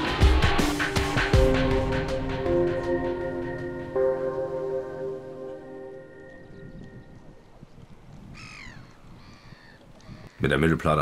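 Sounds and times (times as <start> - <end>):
held chord background music: 0.0 - 7.7.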